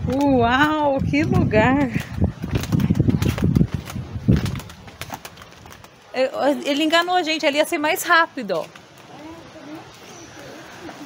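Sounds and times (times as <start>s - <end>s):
wind buffeting microphone: 0.0s - 6.1s.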